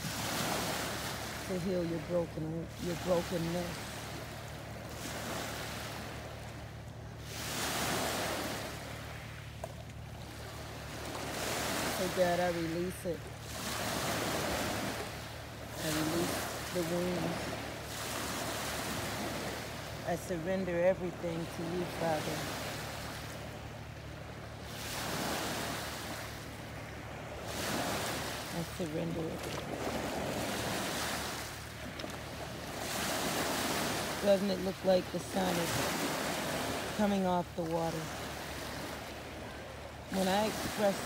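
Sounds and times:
small waves washing onto beach: 0.0 - 41.0.

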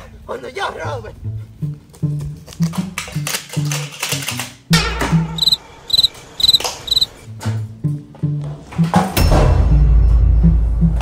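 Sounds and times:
cricket chirping: 5.4 - 7.2.

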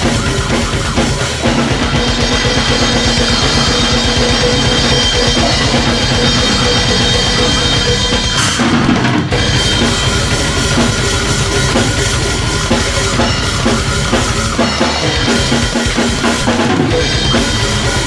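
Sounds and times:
cymbals: 0.0 - 18.0
fast bass drum strokes: 0.0 - 18.0
recorded metal song: 0.0 - 18.0.

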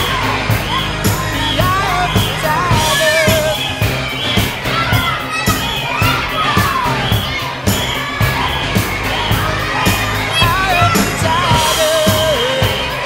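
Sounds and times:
children shouting and cheering: 0.0 - 13.0
music with drum beat: 0.0 - 13.0.

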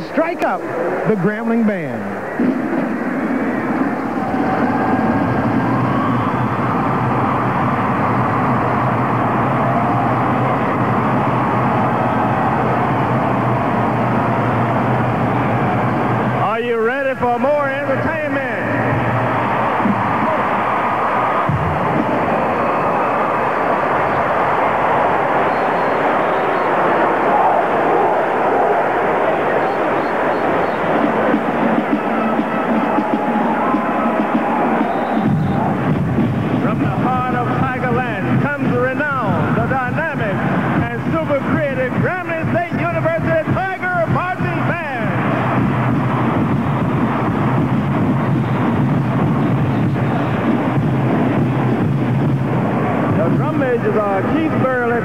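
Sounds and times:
stadium crowd cheering: 0.0 - 55.0.

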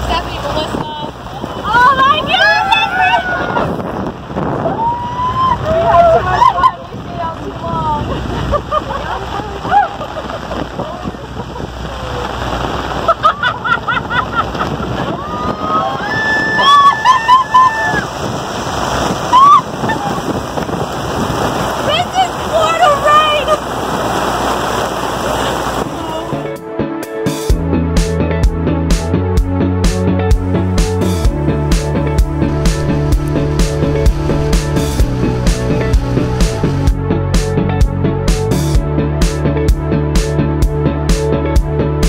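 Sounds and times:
heavy rain on water: 0.0 - 27.7, 28.4 - 42.0
women laughing and squealing: 1.6 - 7.1, 7.8 - 18.2, 19.2 - 20.4, 22.3 - 23.7
music: 25.9 - 42.0.

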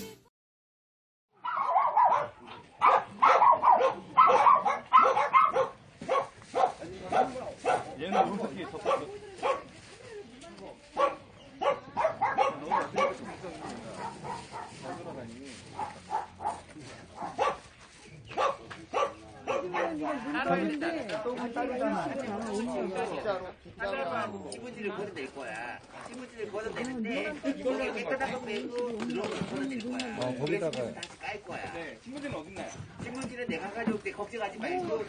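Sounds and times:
dogs barking: 1.4 - 9.7, 11.0 - 15.0, 15.7 - 17.7, 18.3 - 20.3
people's voices: 2.1 - 35.0.

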